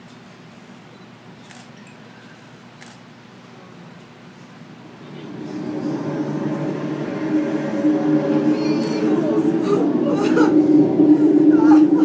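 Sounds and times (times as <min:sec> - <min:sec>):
low drone of held tones: 0:04.6 - 0:12.0.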